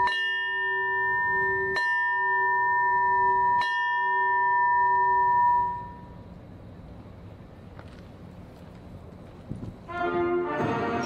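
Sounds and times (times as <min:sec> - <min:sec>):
brass-led orchestral music: 0:09.9 - 0:11.0.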